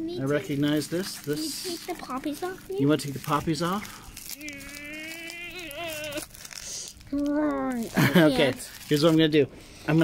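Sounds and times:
child holding long vowel: 4.4 - 6.2.

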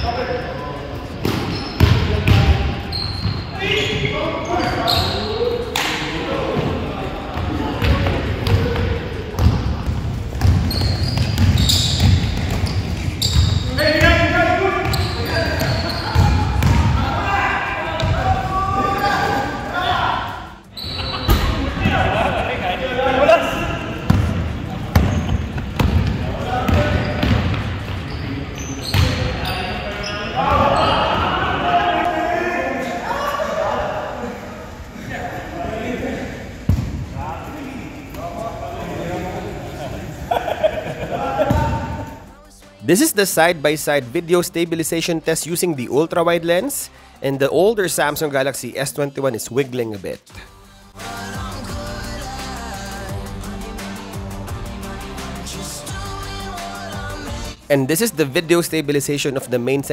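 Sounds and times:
sneaker squeaks: 0.0 - 6.7, 7.4 - 17.1, 17.9 - 21.8, 23.8 - 31.2
players calling out: 0.0 - 49.7
basketball bouncing on hardwood: 9.4 - 14.2, 14.9 - 17.0.

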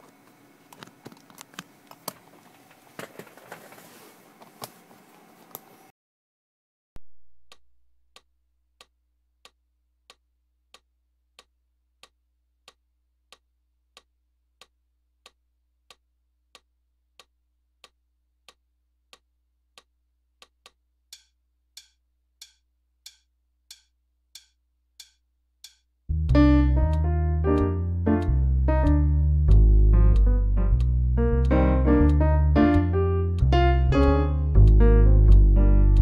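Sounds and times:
metronome clicking: 19.8 - 36.0.

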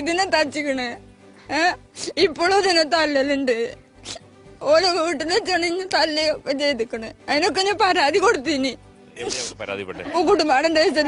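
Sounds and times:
woman speaking into a microphone: 10.0 - 11.0.

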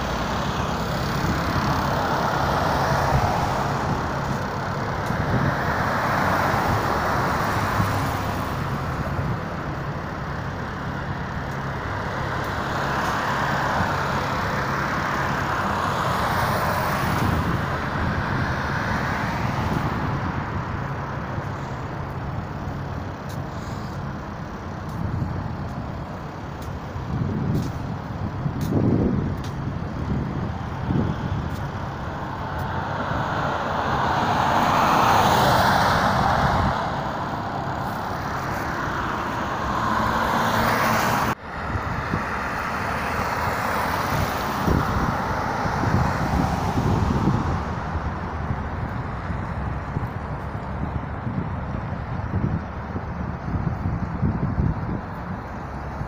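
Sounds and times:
bus engine and road noise: 0.0 - 56.0.

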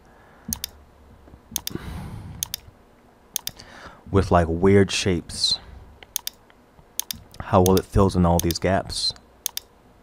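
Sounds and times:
computer mouse button clicking: 0.5 - 0.8, 1.6 - 1.8, 2.4 - 2.7, 3.4 - 3.6, 6.0 - 6.4, 7.0 - 8.6, 9.4 - 9.7.

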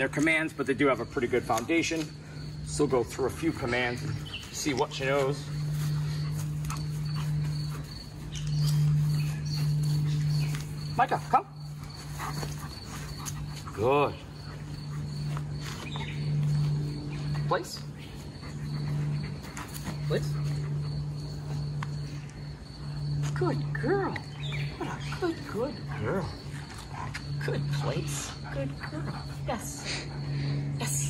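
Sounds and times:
insect chirping: 0.0 - 31.0
steady low hum: 0.0 - 31.0.

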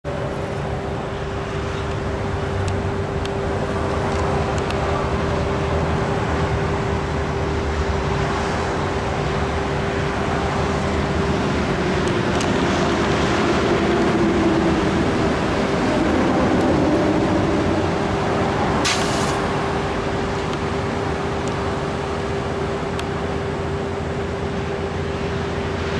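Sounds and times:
road traffic passing: 0.0 - 25.9
steady hum: 0.1 - 25.9
brief hiss: 18.8 - 19.5.

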